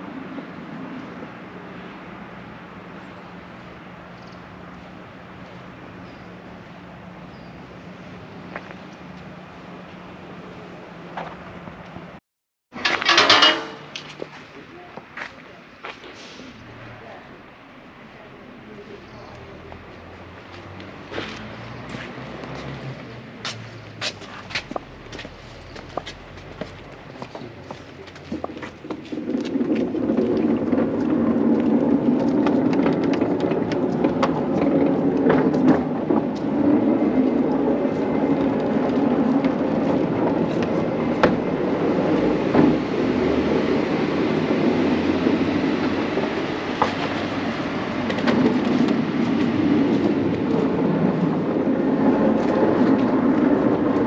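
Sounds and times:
heavy building rotating rumble: 16.6 - 54.0.

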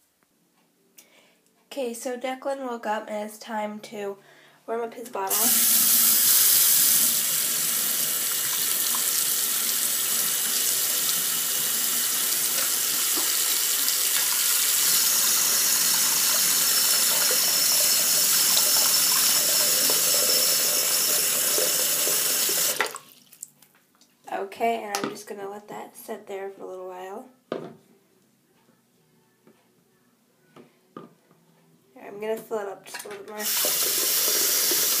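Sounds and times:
tap running into sink: 12.4 - 20.2.

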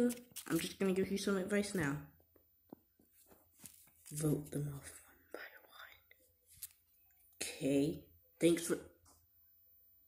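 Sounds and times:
faint whispering: 4.6 - 6.3.

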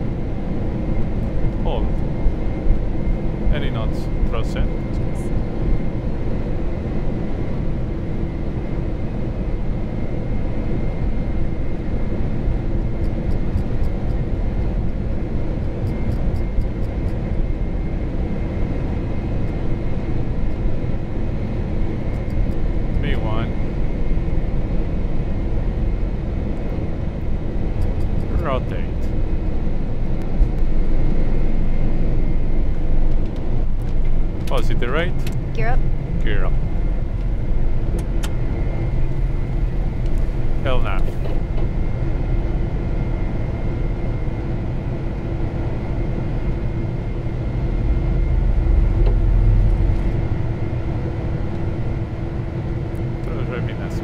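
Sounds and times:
jet engines roaring on takeoff: 0.0 - 54.0
runway rumble: 0.0 - 54.0.

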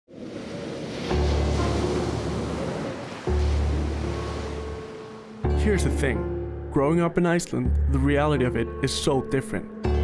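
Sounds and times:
surf breaking on rocks: 0.1 - 5.4.

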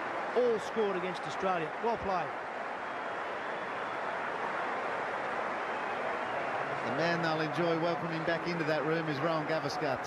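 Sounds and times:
stadium crowd applauding and cheering: 0.0 - 10.0.

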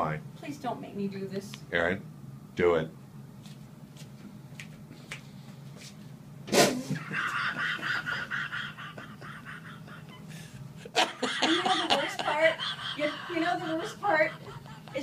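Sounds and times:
cushion air rush fart-like noise: 6.4 - 7.0
man laughing: 7.0 - 15.0.

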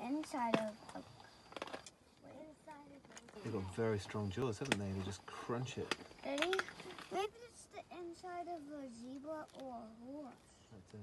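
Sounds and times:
hyenas crunching bone: 0.5 - 2.0, 5.8 - 7.3.

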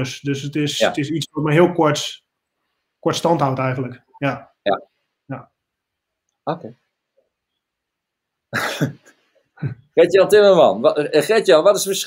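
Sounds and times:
man coughing: 8.5 - 9.8.

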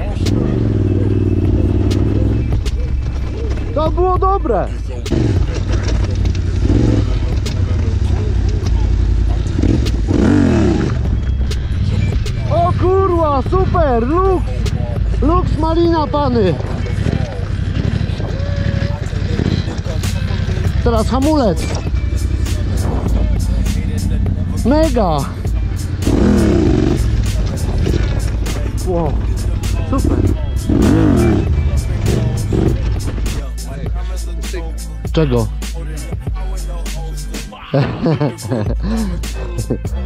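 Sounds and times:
quad engine revving: 0.0 - 4.0, 4.7 - 34.3
background music with steady beat: 0.0 - 40.0
clicks and clatter: 5.4 - 6.6.

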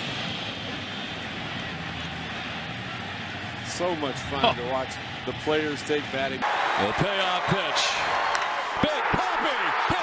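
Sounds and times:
crowd cheering: 3.9 - 10.0.

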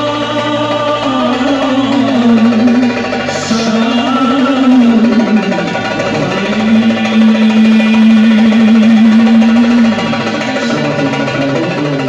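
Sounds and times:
light percussion: 0.0 - 12.0
person singing: 0.0 - 12.0.

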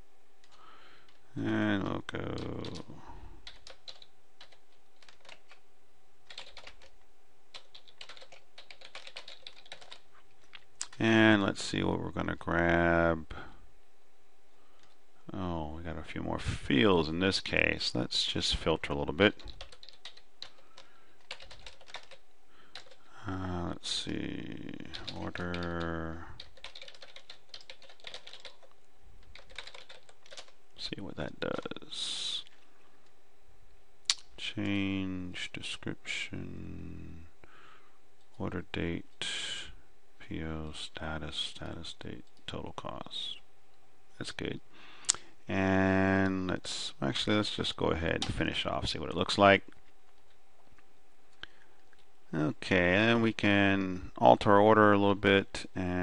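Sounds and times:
typing on computer keyboard: 3.4 - 5.6, 6.3 - 6.9, 7.6 - 10.0, 19.4 - 20.6, 21.2 - 23.0, 25.0 - 28.7, 29.3 - 30.6.

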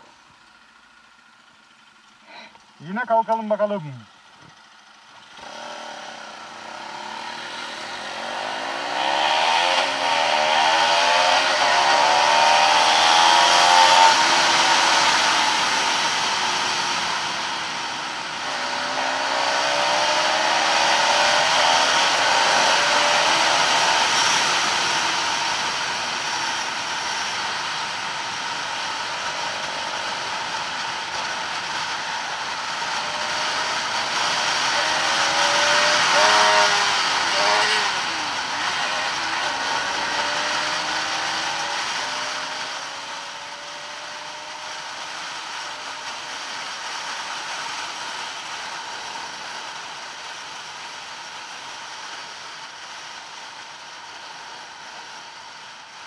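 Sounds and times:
motorcycle engine accelerating: 4.2 - 52.7.

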